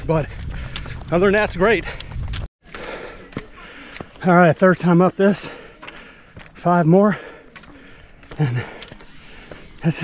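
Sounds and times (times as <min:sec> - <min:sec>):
wind rumble on microphone: 0:00.0 - 0:02.5
heavy breathing: 0:02.6 - 0:04.2, 0:05.3 - 0:09.8
footstep on bare rock: 0:05.8 - 0:10.0.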